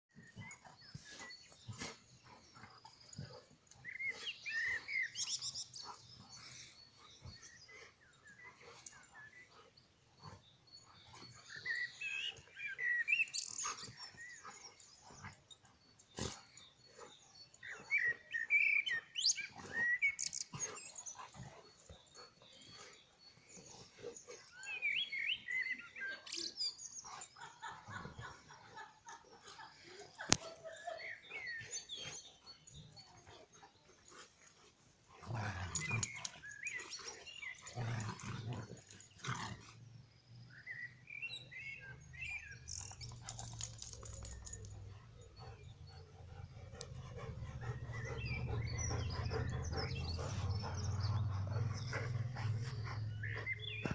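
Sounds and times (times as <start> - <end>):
dogs play-fighting vocalizations: 0.2 - 18.2, 19.4 - 39.9, 42.7 - 53.9.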